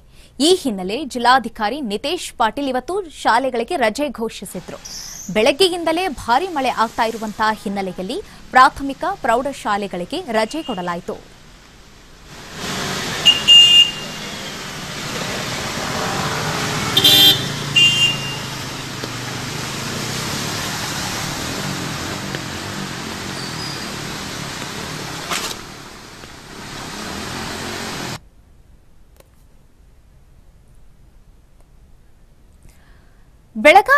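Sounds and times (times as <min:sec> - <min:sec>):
traffic driving through floodwater: 0:04.6 - 0:28.2
car horn honk: 0:13.0 - 0:15.3, 0:16.6 - 0:19.0.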